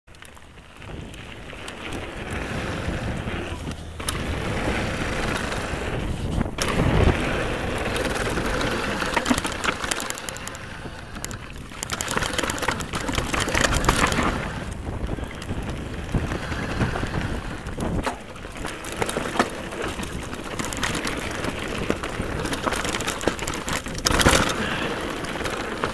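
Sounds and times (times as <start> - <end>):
bike chain and frame rattling: 0.1 - 25.9
wind buffeting microphone: 0.5 - 25.9.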